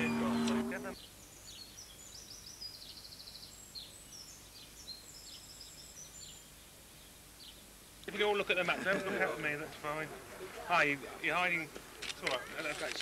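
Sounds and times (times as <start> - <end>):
faint birdsong chirps and trills: 0.0 - 8.5
faint steady hiss: 0.0 - 13.0.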